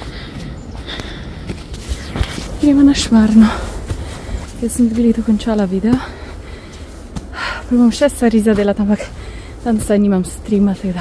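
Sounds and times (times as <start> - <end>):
woman speaking: 2.6 - 3.8, 4.6 - 6.2, 7.4 - 11.0.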